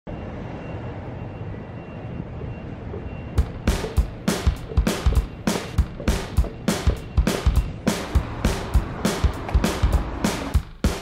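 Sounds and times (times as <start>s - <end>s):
street traffic rumble: 0.1s - 11.0s
music with sharp drum beats: 3.4s - 11.0s.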